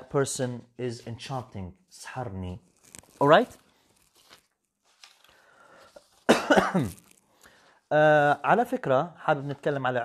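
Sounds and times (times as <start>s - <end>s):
man coughing: 6.3s - 7.0s.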